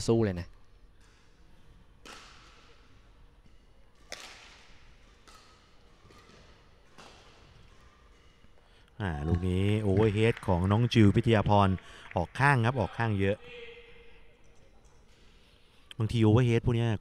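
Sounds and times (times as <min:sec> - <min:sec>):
rackets hitting shuttlecock: 0:00.6 - 0:10.2, 0:14.3 - 0:15.3.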